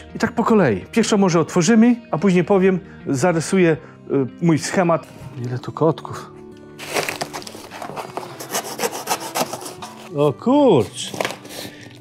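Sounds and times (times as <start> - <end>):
cardboard box being torn open: 6.8 - 10.1, 11.1 - 11.7.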